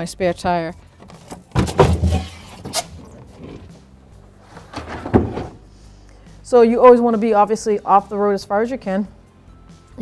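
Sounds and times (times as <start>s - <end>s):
knocks and clunks of handling: 1.0s - 3.7s, 4.5s - 5.7s.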